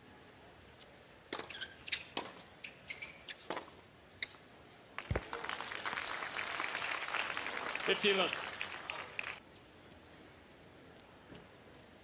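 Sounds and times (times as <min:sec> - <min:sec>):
shoes squeaking on court: 0:01.3 - 0:04.4
crowd applause: 0:05.0 - 0:09.4.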